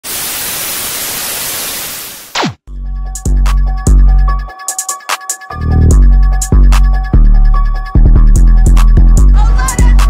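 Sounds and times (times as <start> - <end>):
television static hiss: 0.1 - 2.3.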